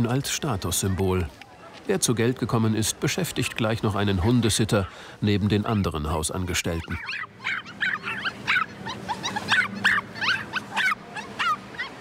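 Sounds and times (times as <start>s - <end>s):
small dogs yipping and whining: 6.7s - 12.0s.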